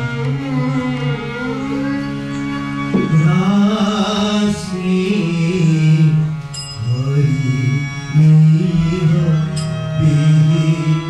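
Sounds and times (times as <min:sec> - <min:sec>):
gliding melody: 0:00.0 - 0:11.0
sitar: 0:00.0 - 0:11.0.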